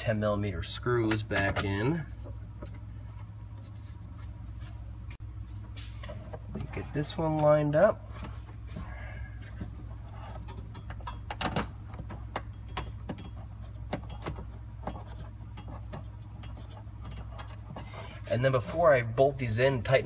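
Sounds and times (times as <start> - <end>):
steady low hum: 0.0 - 20.0
plastic parts clicking and knocking: 10.4 - 17.9.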